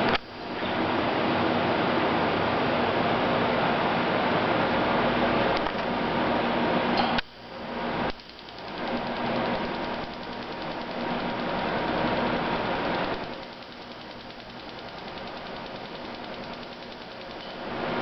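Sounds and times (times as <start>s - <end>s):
low machine hum: 4.9s - 18.0s
laser machine buzzing hiss: 7.9s - 18.0s.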